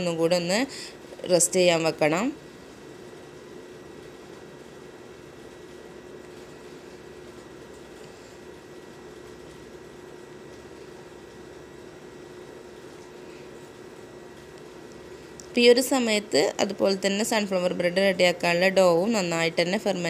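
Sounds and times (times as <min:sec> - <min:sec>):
low even hum: 0:00.0 - 0:20.0.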